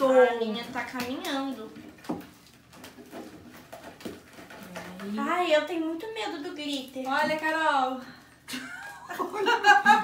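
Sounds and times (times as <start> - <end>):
slime squelching: 0.0 - 8.3.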